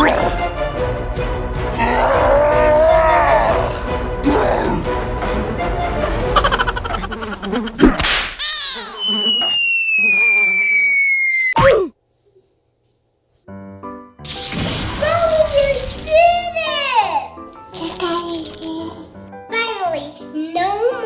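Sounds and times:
descending cartoon whistle: 8.4 - 11.9
sharp cartoon hit: 14.2 - 16.4.

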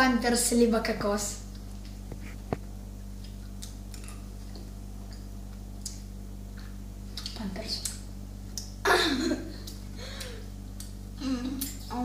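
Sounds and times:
low electrical hum: 0.0 - 12.0
child's voice: 11.2 - 12.0.

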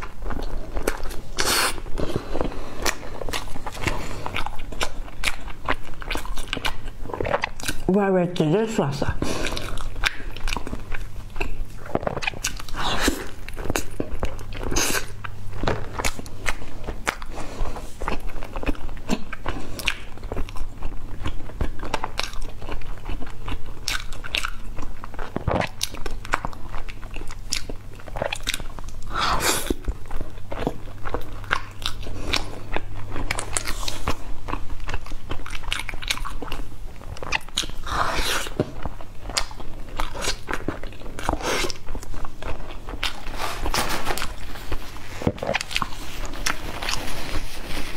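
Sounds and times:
wet mouth sounds: 0.0 - 7.9, 9.0 - 47.4.

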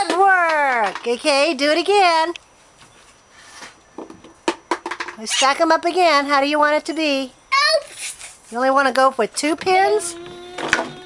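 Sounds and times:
plastic cups clicking on wood: 0.0 - 1.3, 4.0 - 5.2.

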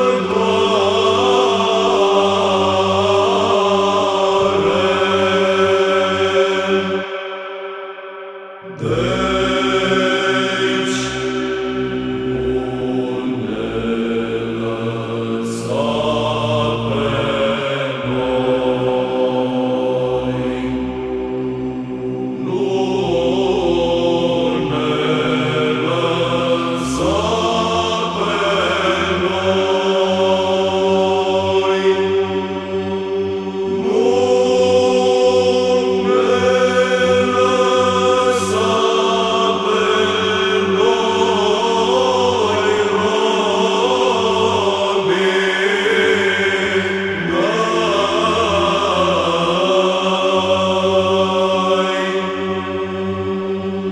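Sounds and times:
chant melody line: 0.0 - 53.9.

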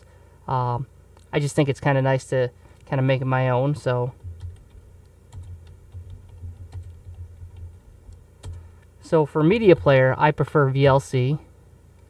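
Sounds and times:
computer keyboard typing: 3.8 - 8.7, 9.6 - 10.0.

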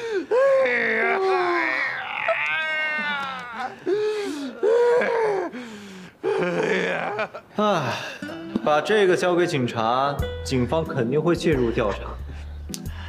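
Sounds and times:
man groaning in pain: 0.0 - 5.6, 6.2 - 8.1.

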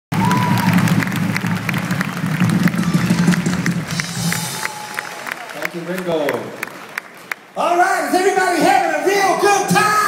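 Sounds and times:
audience applauding and cheering: 0.1 - 9.4.

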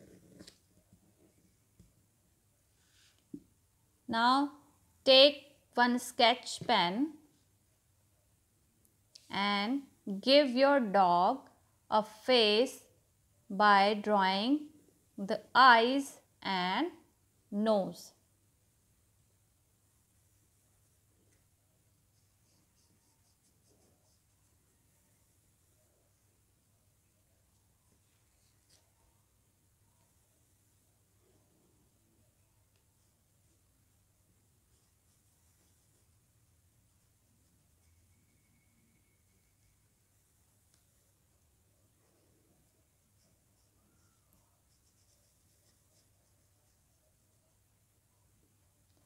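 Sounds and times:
pen scratching on paper: 21.9 - 24.7, 42.0 - 47.6.

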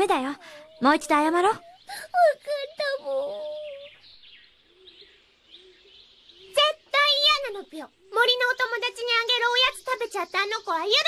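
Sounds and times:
faint birds chirping: 0.0 - 11.0.

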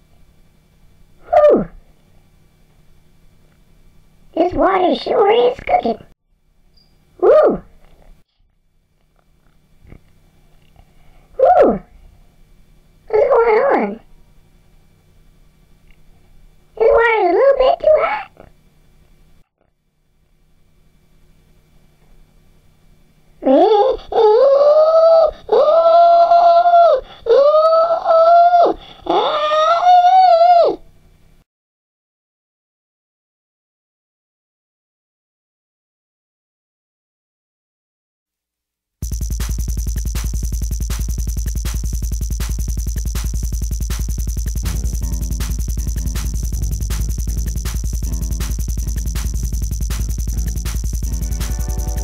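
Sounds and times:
cartoon pig cry: 23.4 - 30.8
faint low hum: 39.0 - 52.0.

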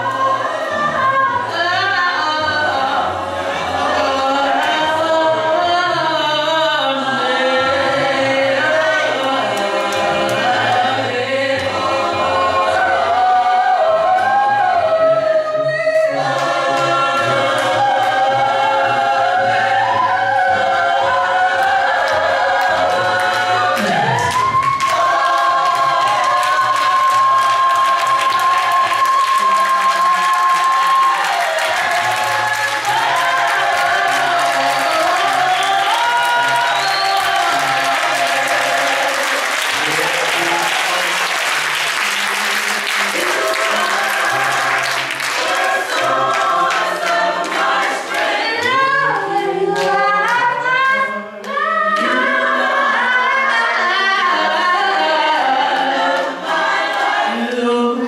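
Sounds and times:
gospel choir singing a cappella: 0.0 - 58.0
clapping: 23.3 - 48.7.

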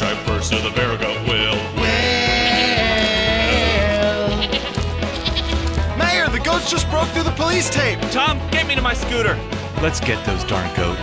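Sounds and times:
country-style music: 0.0 - 11.0
goats bleating: 2.1 - 6.2.

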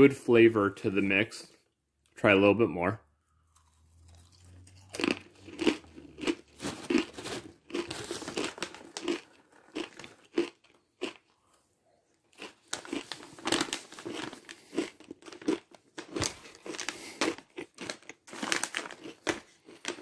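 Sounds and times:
chewing crunchy snack: 3.4 - 11.6, 12.3 - 20.0
foil pouch crinkling: 6.2 - 10.4, 12.4 - 20.0.

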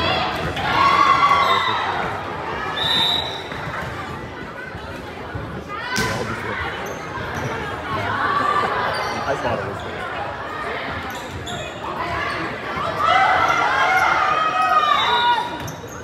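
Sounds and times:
people shouting and chatting: 0.0 - 16.0.

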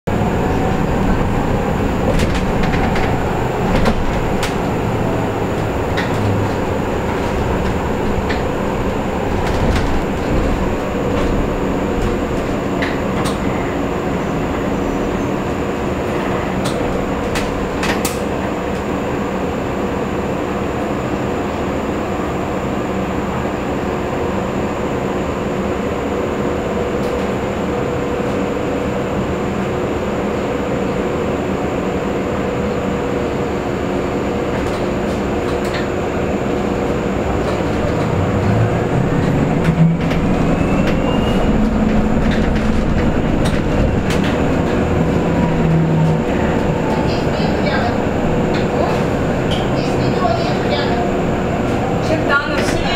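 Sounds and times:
electric bus cabin hum: 0.0 - 52.9.

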